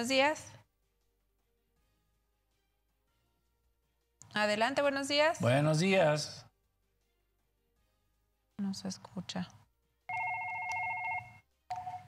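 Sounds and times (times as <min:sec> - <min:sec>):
desk telephone electronic ring: 0:10.1 - 0:12.0.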